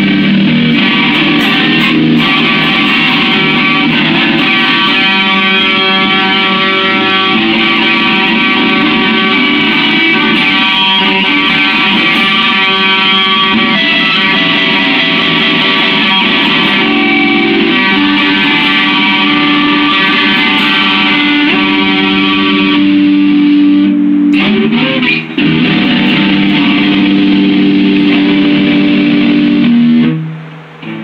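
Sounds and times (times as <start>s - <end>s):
electric guitar chords: 0.0s - 31.0s.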